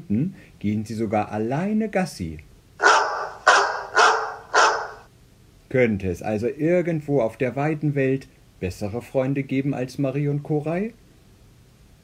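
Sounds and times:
dog barking: 2.8s - 5.1s.

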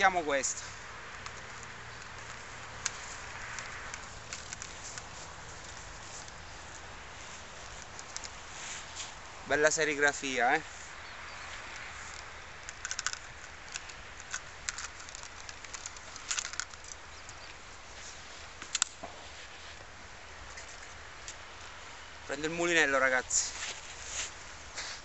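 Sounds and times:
steady background hiss: 0.0s - 25.0s
fishing rod sections clicking: 1.1s - 6.5s, 7.6s - 8.4s, 11.8s - 17.6s, 18.6s - 19.0s.

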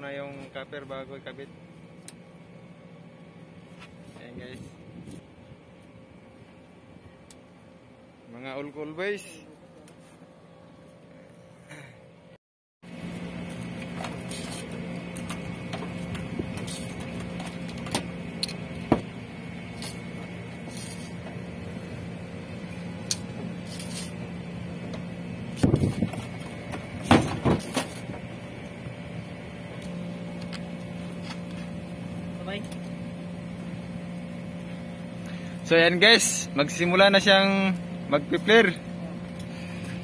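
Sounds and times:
steady mechanical hum: 0.0s - 40.0s.

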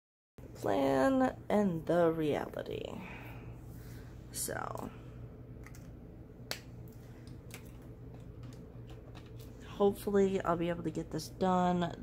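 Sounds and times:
low steady hum: 0.4s - 12.0s.

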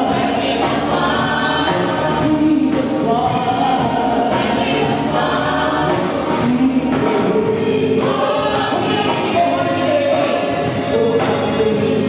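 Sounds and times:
backing music: 0.0s - 12.0s
congregation singing: 0.0s - 12.0s
steady percussion beat: 0.0s - 12.0s.

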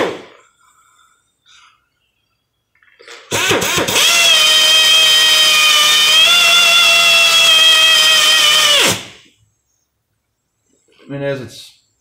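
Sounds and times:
pneumatic drill whining: 3.3s - 9.2s.

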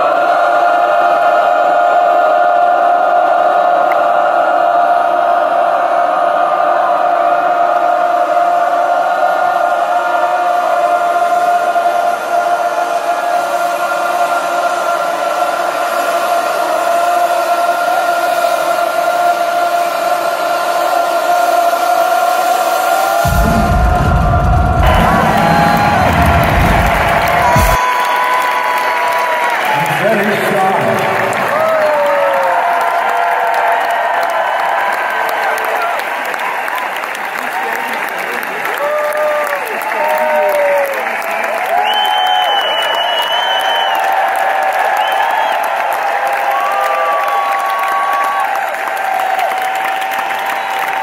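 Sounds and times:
live band long held tone: 22.6s - 28.8s
heavy bass: 23.2s - 27.8s.

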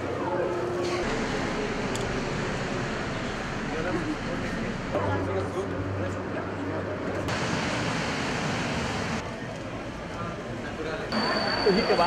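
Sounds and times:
subway train rushing: 0.0s - 12.0s.

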